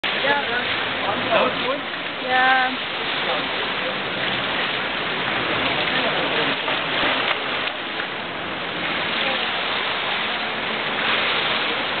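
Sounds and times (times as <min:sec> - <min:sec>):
pool water splashing: 0:00.0 - 0:12.0
swimmer entry splash: 0:00.0 - 0:12.0.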